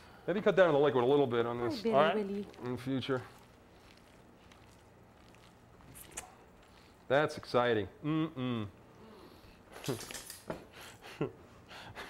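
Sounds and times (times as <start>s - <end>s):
hands squelching wet meat: 2.0s - 7.6s.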